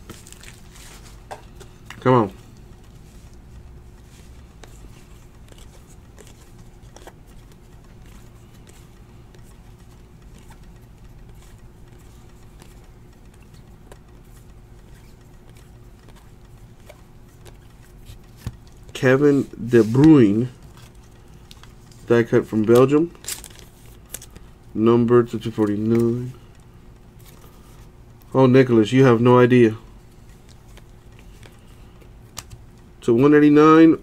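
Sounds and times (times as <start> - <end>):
low steady hum: 0.0 - 34.0
trading cards clicking and rustling: 0.0 - 34.0.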